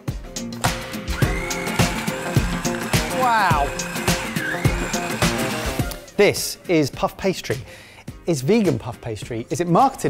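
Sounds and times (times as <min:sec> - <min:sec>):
background music with beat: 0:00.0 - 0:10.0
food processor motor whine: 0:01.1 - 0:06.0.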